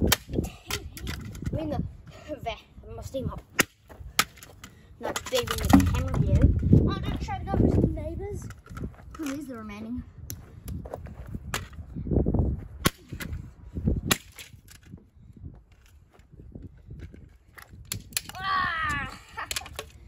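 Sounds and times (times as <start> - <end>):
hand tool cracking plastic and metal: 0.0 - 1.6, 5.1 - 6.5, 19.4 - 20.0
heavy thuds: 5.6 - 6.6.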